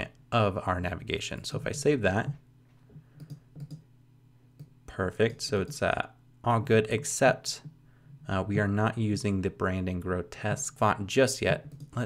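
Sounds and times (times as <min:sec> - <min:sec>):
faint low hum: 0:00.0 - 0:12.0
computer keys and mouse clicks: 0:03.0 - 0:03.8, 0:11.6 - 0:12.0.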